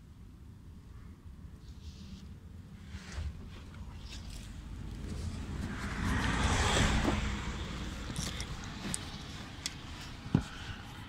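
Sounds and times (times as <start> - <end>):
car passing by: 4.6 - 9.4.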